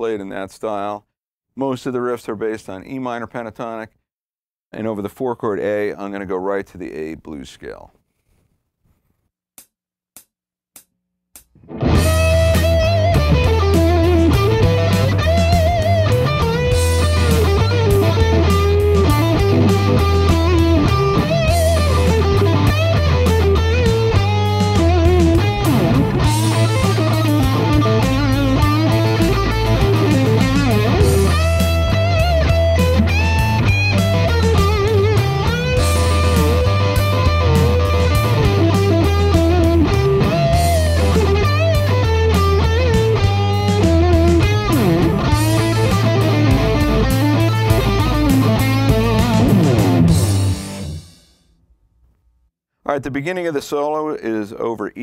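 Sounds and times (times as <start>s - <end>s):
bass and drums backing track: 11.4s - 51.3s
electric guitar lead solo: 11.7s - 51.0s.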